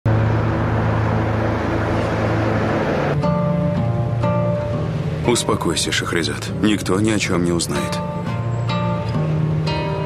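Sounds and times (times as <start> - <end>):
car engine hum: 0.1 - 6.0
tyre and road noise: 0.1 - 10.0.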